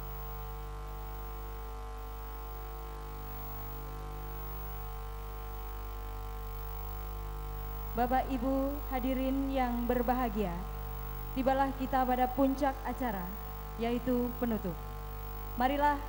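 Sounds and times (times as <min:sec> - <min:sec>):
sound system mains hum: 0:00.0 - 0:16.0.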